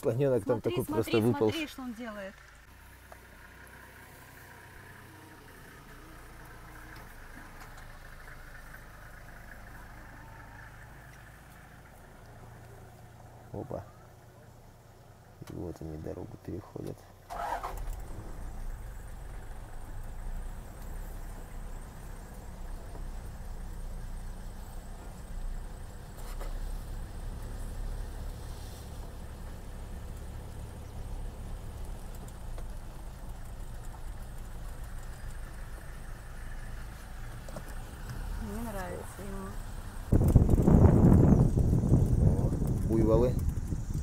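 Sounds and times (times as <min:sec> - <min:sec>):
vehicle engine idling low: 0:00.0 - 0:44.0.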